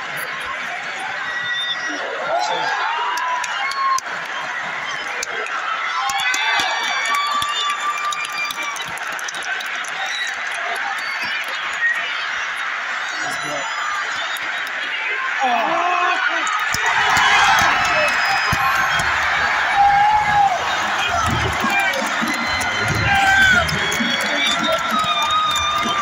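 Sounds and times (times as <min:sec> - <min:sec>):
crowd talking and shouting: 0:00.0 - 0:26.0.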